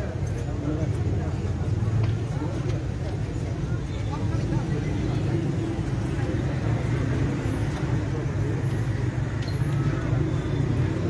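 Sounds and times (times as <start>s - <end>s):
indistinct crowd voices: 0.0s - 11.0s
road traffic rumble: 0.0s - 11.0s.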